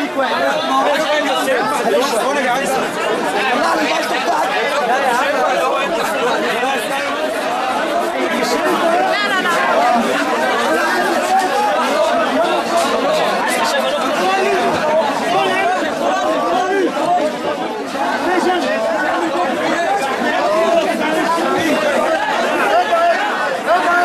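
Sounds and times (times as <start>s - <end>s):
crowd chatter: 0.0s - 24.0s.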